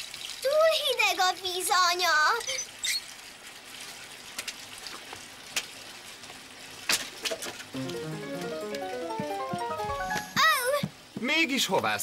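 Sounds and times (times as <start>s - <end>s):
water gushing from tap into tub: 0.0s - 7.7s
short rising musical notes: 7.8s - 10.4s.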